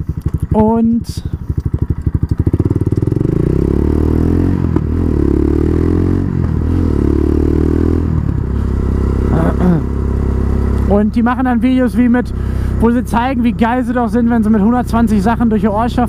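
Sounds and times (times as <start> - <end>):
quad bike engine pulling away: 1.4 - 16.0.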